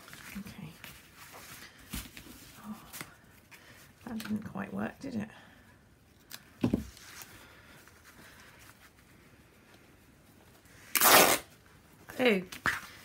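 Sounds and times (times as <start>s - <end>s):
fabric ripping: 10.9s - 11.5s.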